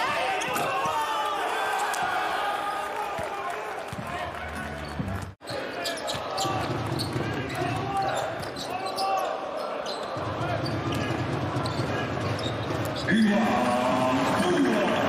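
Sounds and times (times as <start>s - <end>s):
arena crowd noise: 0.0s - 15.0s.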